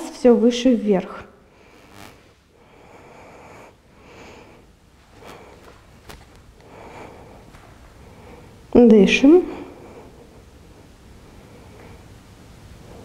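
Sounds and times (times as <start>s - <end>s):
woman breathing through the nose: 1.5s - 5.9s, 6.6s - 8.7s, 9.5s - 12.2s.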